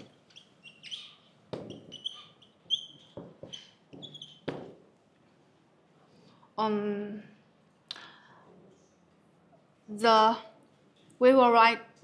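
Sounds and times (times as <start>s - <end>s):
marker squeaking on whiteboard: 0.0s - 5.0s.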